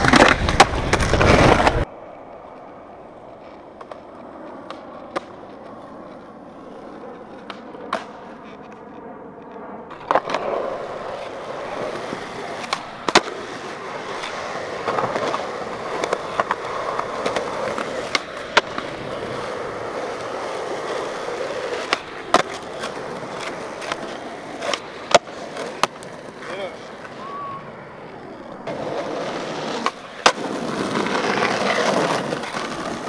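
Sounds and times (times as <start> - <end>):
skateboard slapping down: 0.0 - 2.6, 3.4 - 33.0
skateboard tail popping: 0.0 - 33.0
skateboard wheels rolling on asphalt: 0.0 - 33.0.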